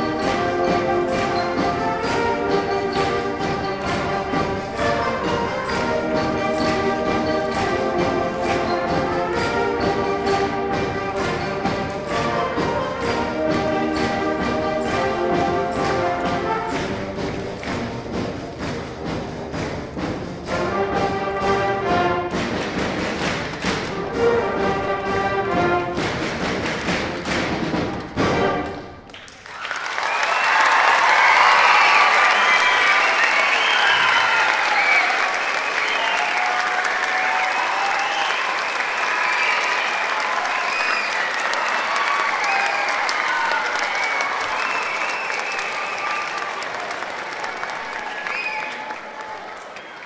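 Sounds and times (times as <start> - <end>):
audience applause: 0.0 - 18.1, 25.8 - 50.0
concert band playing: 0.0 - 29.1
audience cheering: 29.1 - 50.0.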